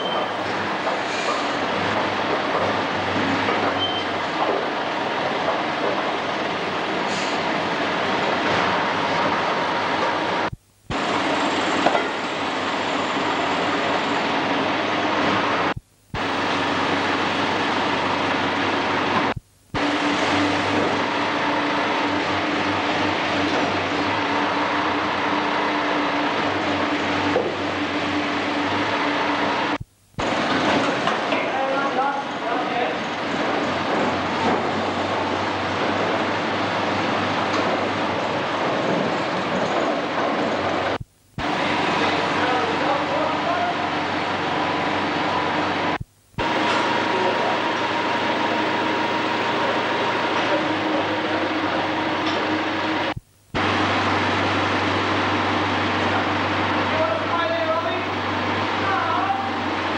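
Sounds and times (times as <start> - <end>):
tractor engine running: 32.5 - 59.9.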